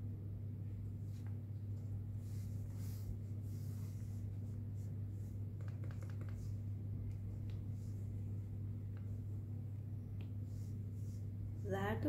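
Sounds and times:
soft rubbing and rustling: 0.8s - 12.0s.

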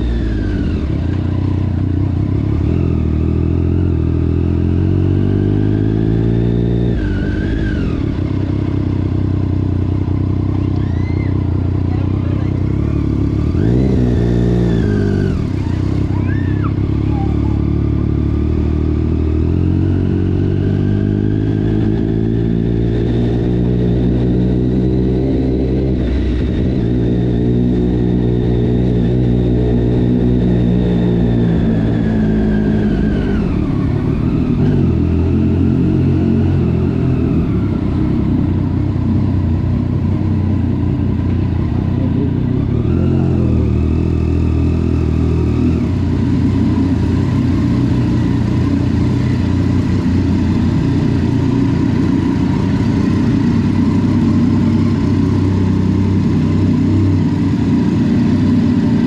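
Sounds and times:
motorcycle engine idling: 0.0s - 4.2s, 8.0s - 19.1s, 36.7s - 42.9s, 45.9s - 59.0s.

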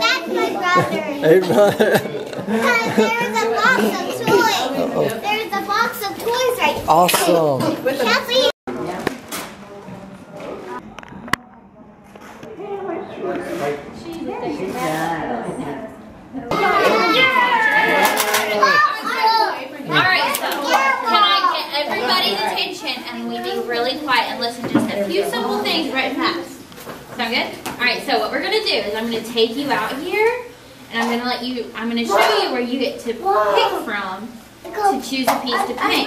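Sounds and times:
young children chattering: 0.0s - 9.1s, 12.4s - 26.7s, 29.6s - 36.0s.

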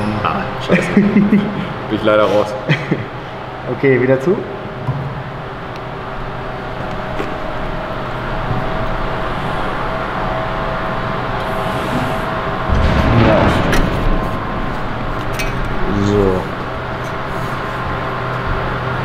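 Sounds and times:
sheet-metal folding machine hum: 4.6s - 19.0s.

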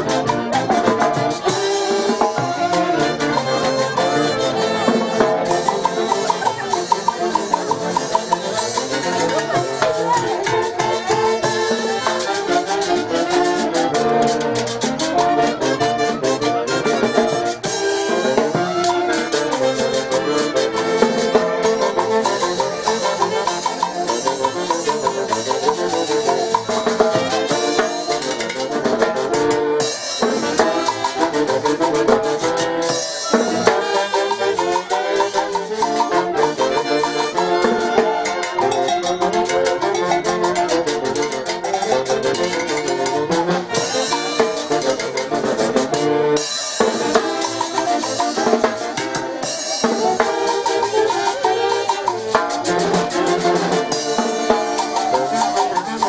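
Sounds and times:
saxophones and trumpet melody: 0.0s - 56.0s
snare drum and cymbals beat: 46.7s - 56.0s.

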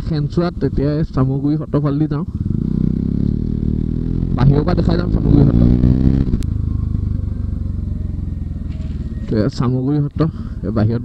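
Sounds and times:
motorcycle engine running: 2.2s - 9.8s.

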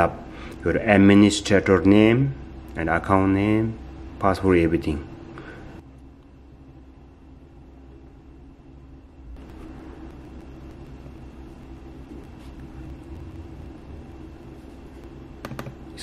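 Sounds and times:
low background hum and rumble: 0.0s - 16.0s.

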